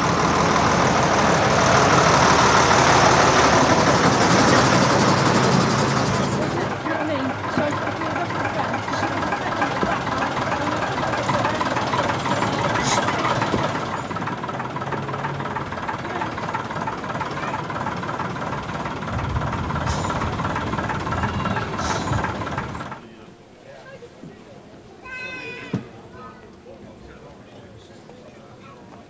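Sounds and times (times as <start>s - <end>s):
bus diesel engine running: 0.0s - 23.2s.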